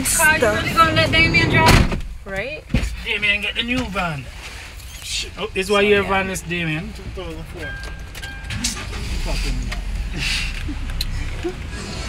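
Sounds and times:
people talking: 0:00.0 - 0:04.3, 0:08.6 - 0:10.4
low engine rumble: 0:00.0 - 0:12.0.

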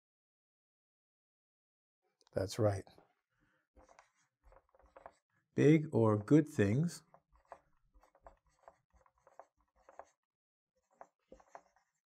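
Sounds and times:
marker writing on whiteboard: 0:03.8 - 0:05.3, 0:06.6 - 0:12.0.

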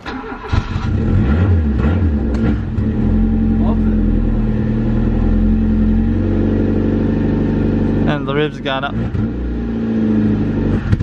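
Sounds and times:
car engine idling unevenly: 0:02.2 - 0:09.0.

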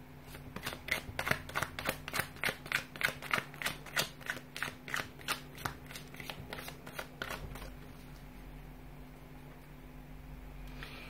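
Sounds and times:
cards being shuffled: 0:00.3 - 0:08.3.

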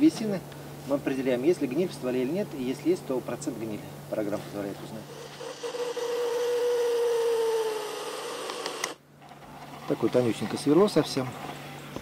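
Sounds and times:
electric drill motor whining: 0:05.1 - 0:09.0.

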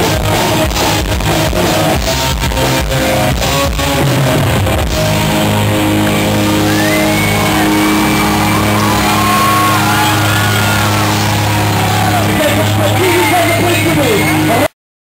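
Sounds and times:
punk band ringing chord: 0:00.0 - 0:14.5.

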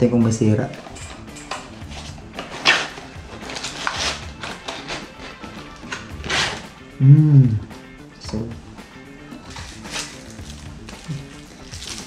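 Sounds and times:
quiet background music: 0:00.0 - 0:12.0
cardboard packaging rustling: 0:01.8 - 0:06.7, 0:09.4 - 0:12.0.

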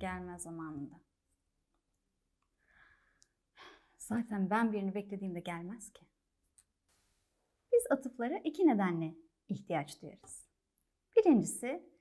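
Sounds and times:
woman breathing softly: 0:02.6 - 0:04.0.

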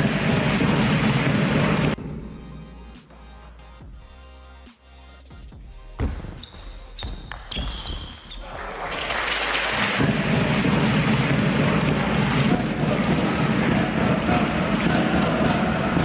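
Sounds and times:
crowd cheering and applauding: 0:08.2 - 0:16.0.

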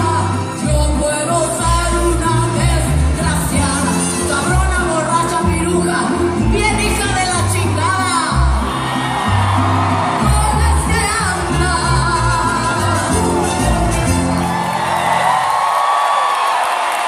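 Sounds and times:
woman singing: 0:00.0 - 0:08.4, 0:10.2 - 0:13.5
live band playing pop song: 0:00.0 - 0:15.0
crowd whooping: 0:08.6 - 0:17.0.

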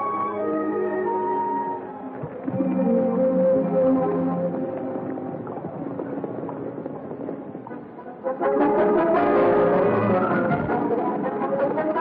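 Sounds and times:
orchestral film score: 0:00.0 - 0:05.5, 0:07.5 - 0:12.0.

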